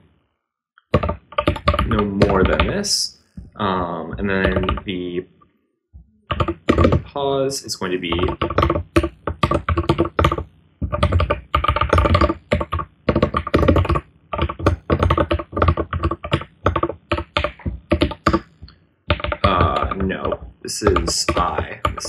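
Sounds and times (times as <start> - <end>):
fast typing on keyboard: 1.0 - 3.0, 4.1 - 5.0, 6.3 - 7.1, 7.7 - 22.0.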